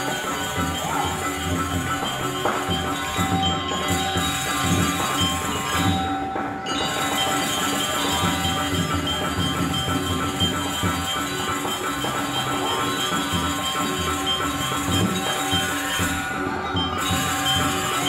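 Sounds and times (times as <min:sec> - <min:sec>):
gamelan ensemble playing: 0:00.0 - 0:18.0.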